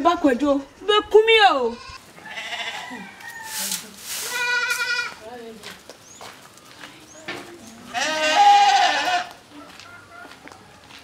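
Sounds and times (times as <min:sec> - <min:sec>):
goat bleating: 0:01.6 - 0:03.2, 0:04.2 - 0:05.3, 0:07.7 - 0:09.4.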